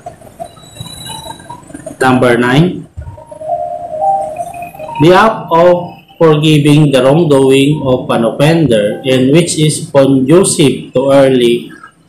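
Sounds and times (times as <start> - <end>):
soft melody of held notes: 3.0 - 8.2.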